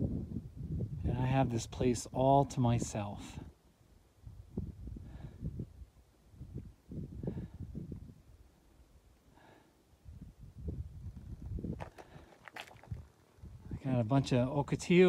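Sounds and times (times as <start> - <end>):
wind buffeting microphone: 0.0 - 3.5, 4.2 - 8.5, 10.0 - 14.9
soft breaths: 7.1 - 10.3, 11.9 - 12.9.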